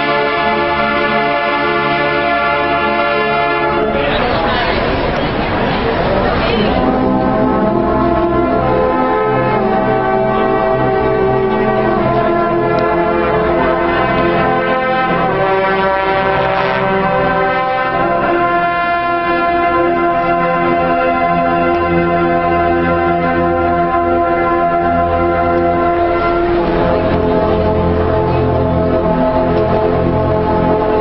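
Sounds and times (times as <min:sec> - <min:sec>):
brass band playing chords: 0:00.0 - 0:31.0.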